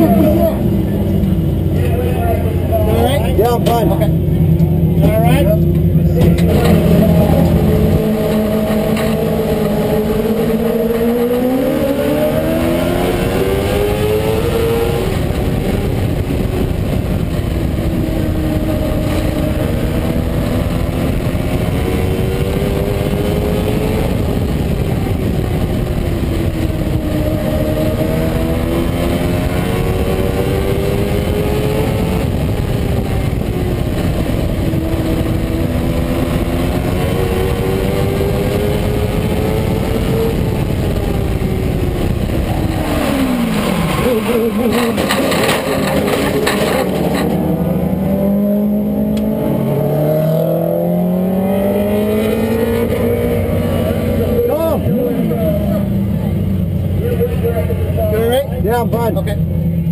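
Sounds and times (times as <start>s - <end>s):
race car engine revving: 0.0s - 59.9s.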